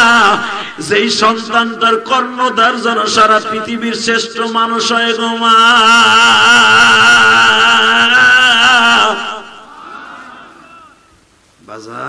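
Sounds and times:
man's amplified intoned chant: 0.0 - 9.7.

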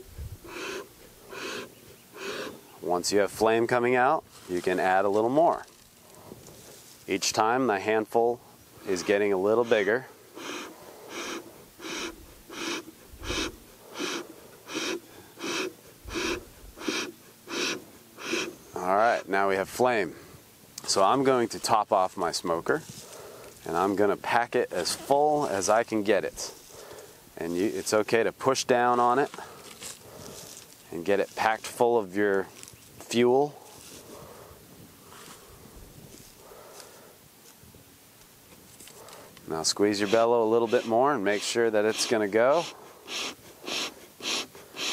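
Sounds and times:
bellows puffing air: 0.0 - 3.6, 7.8 - 19.3, 29.1 - 30.8, 33.4 - 37.2, 38.8 - 44.9
soft rustling of wood shavings: 2.7 - 7.4, 20.8 - 42.8.

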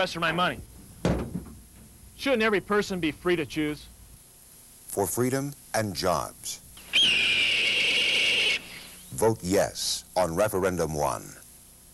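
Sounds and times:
raptor screeching: 6.8 - 9.1.

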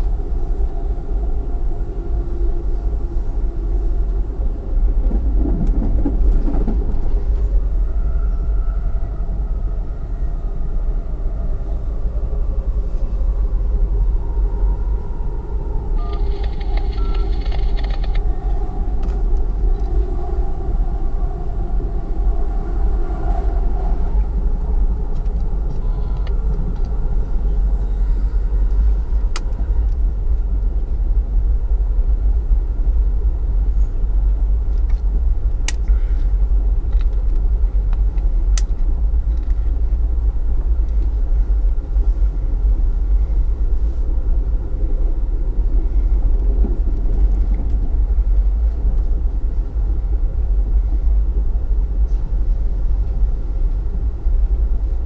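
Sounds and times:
train rumbling on rails: 0.0 - 55.0.

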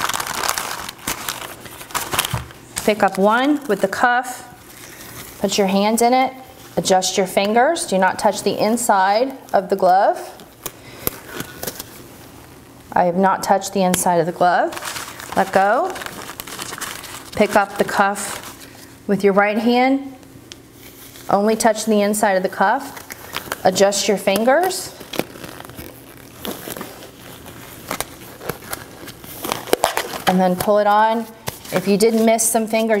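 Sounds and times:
rubber gloves rustling: 0.0 - 19.0, 20.5 - 33.0
glove rustling: 14.7 - 19.0, 24.3 - 33.0
glove snapping: 27.8 - 30.3
glove clicks and snaps: 27.9 - 28.8.

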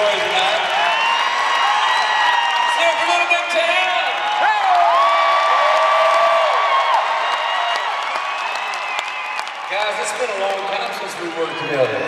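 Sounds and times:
crowd cheering and applauding: 0.0 - 12.0
high whoops from fans: 4.2 - 9.5.

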